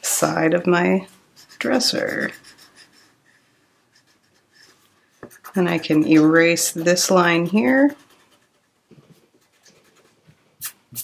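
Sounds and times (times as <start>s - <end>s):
pencil scratching on paper: 1.3s - 10.2s.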